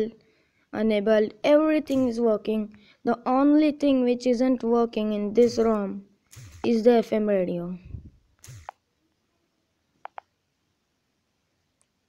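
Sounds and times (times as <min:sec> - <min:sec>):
quick clicks: 0:01.9 - 0:02.2, 0:05.4 - 0:06.8, 0:08.4 - 0:08.8.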